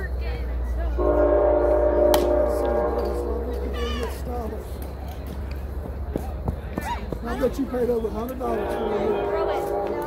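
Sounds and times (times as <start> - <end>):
horn sounding a chord: 1.0 - 3.9, 8.4 - 10.0.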